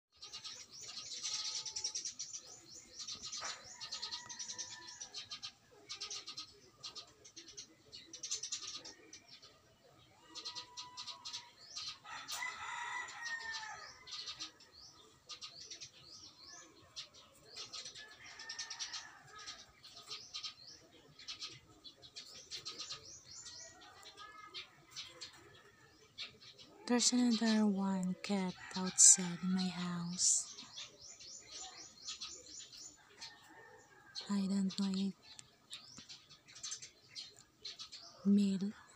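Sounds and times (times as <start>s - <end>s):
birds chirping: 0.1s - 38.9s
chickens calling: 0.2s - 38.9s.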